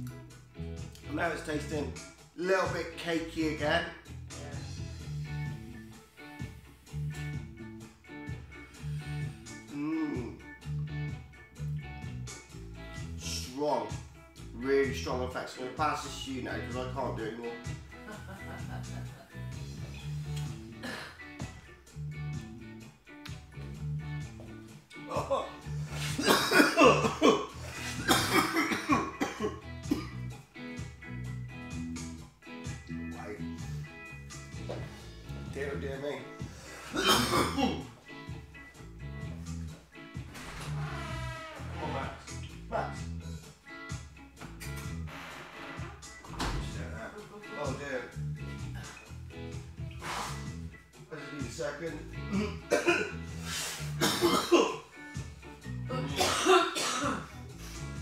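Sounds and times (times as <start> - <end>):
background music with guitar: 0.0 - 58.0
man coughing hard: 20.8 - 21.2, 25.1 - 30.2, 36.8 - 37.9, 52.3 - 53.2, 53.9 - 54.9, 55.9 - 57.3.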